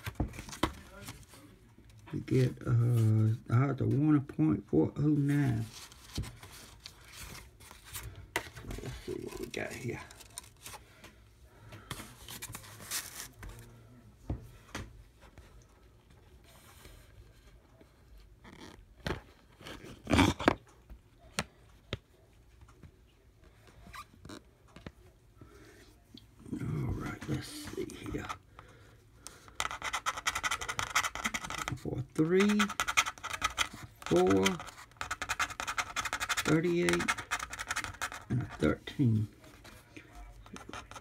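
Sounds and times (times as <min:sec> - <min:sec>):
paper rustling: 0:05.4 - 0:11.1, 0:11.8 - 0:13.7
coin scratching ticket: 0:29.6 - 0:38.8.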